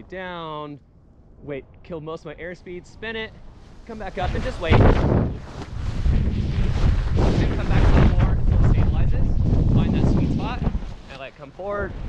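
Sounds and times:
wind rushing over microphone: 3.8 - 12.0.

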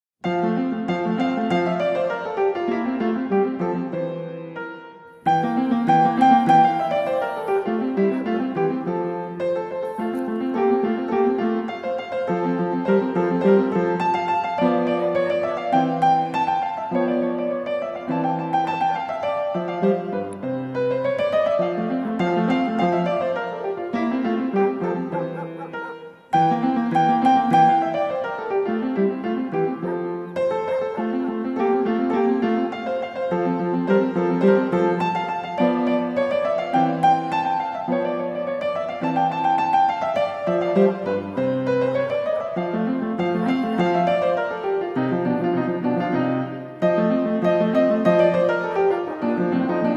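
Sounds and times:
piano music: 0.2 - 49.9.

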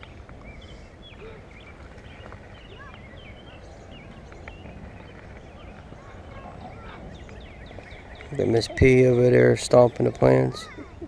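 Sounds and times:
birds chirping: 0.0 - 11.0
low outdoor rumble: 0.0 - 11.0.

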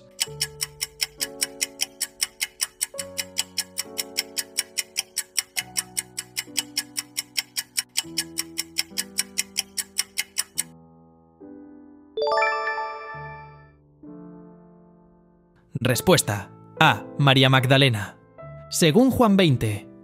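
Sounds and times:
rapid clock-like ticking: 0.0 - 10.8.

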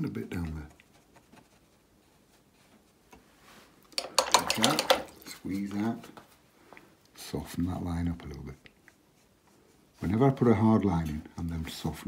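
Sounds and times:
paintbrush clinking against pot: 4.0 - 5.3.

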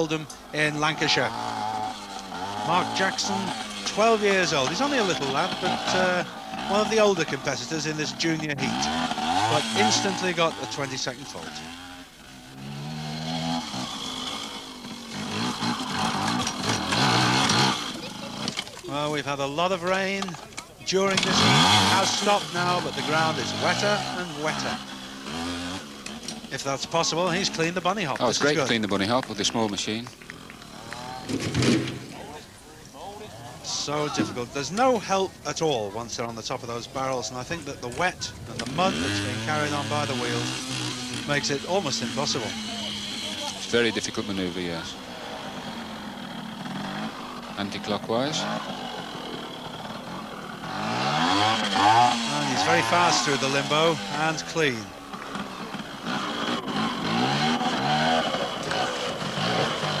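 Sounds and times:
motorcycle engine revving: 0.0 - 60.0
faint voices: 15.2 - 25.0, 32.0 - 46.0, 47.0 - 60.0.

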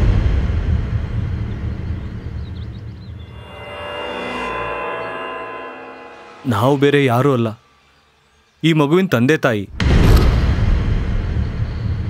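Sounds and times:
deep cinematic boom rumble: 0.0 - 3.5, 9.7 - 12.0.

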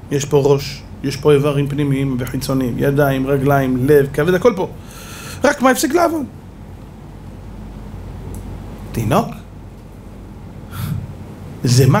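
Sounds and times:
low hum: 0.0 - 12.0
faint hiss: 10.6 - 12.0.

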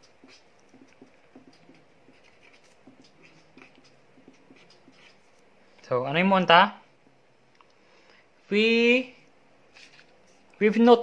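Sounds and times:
marker scratching on paper: 0.0 - 5.4.

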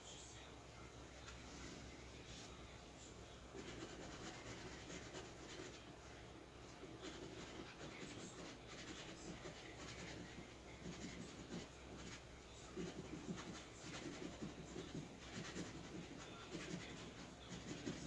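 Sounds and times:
scratching lottery ticket: 3.5 - 6.0, 6.7 - 18.0.

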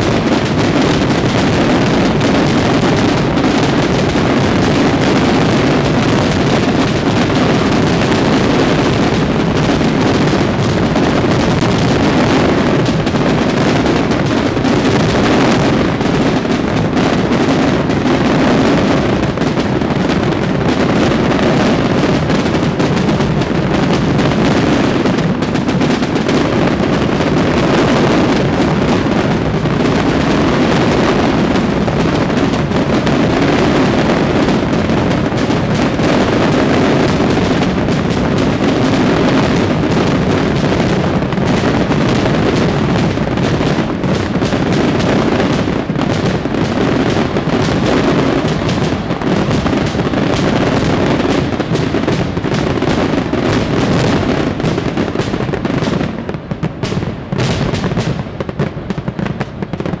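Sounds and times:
fireworks bangs and crackles: 0.0 - 60.0.

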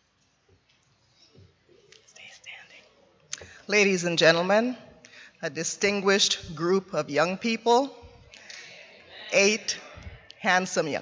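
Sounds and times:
faint whispering: 1.1 - 3.6.

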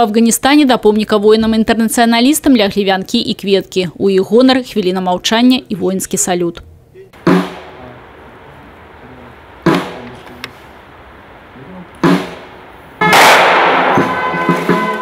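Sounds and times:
rifle salute volleys: 7.2 - 15.0
loud brass music: 12.0 - 15.0.

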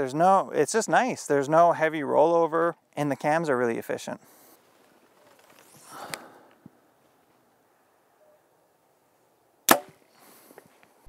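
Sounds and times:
bow string snap: 9.7 - 10.0.

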